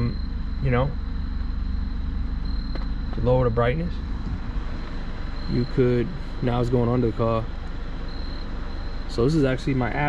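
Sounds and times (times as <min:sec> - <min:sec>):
car engine idling: 0:00.0 - 0:10.0
faint high whine: 0:00.0 - 0:10.0.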